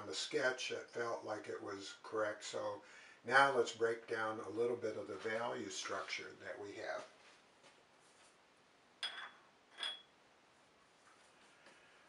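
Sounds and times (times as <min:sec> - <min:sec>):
paintbrush clinking on glass: 0:09.0 - 0:10.1.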